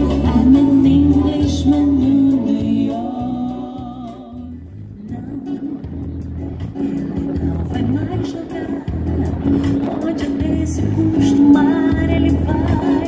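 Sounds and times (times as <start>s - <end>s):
acoustic guitar: 0.0s - 13.0s
low bass: 0.0s - 13.0s.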